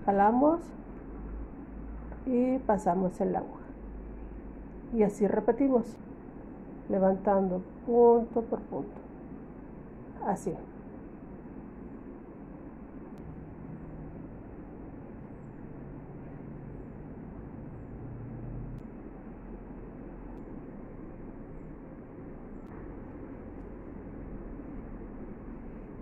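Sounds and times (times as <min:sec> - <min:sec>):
low hum and hiss: 0:00.0 - 0:26.0.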